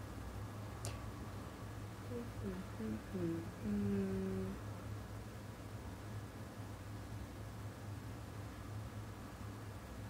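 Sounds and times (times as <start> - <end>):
woman humming: 2.1 - 4.6.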